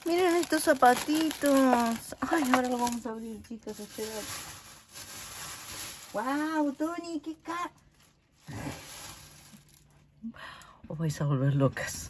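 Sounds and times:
cellophane rustling and crinkling: 0.0s - 10.2s.

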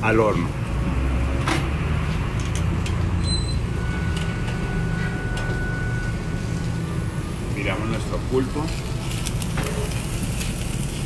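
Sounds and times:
low rumble of machinery: 2.4s - 11.0s.

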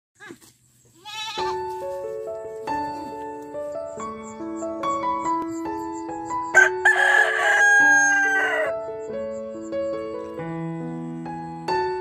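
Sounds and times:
goat bleating: 1.0s - 1.7s
background music with keyboard notes: 1.0s - 12.0s.

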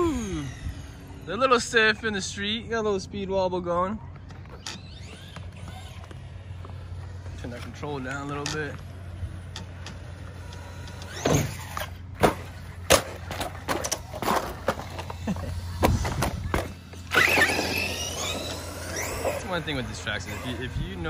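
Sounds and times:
electric motor whining: 0.0s - 2.0s, 4.1s - 21.0s
rc truck running on pavement: 0.0s - 21.0s.

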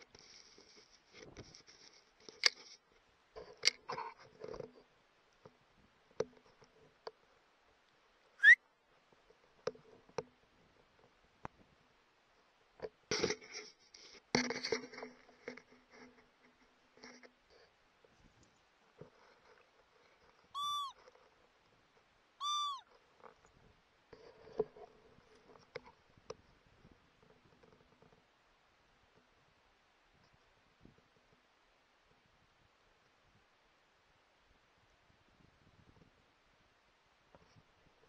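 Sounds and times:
upward sliding whistle: 20.6s - 20.9s, 22.4s - 22.8s
short high rising-falling calls: 20.6s - 21.0s, 22.4s - 22.8s.

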